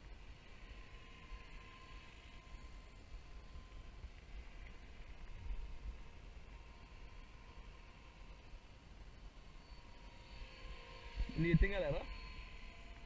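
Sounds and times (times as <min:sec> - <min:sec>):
model helicopter whine: 0:00.0 - 0:13.0.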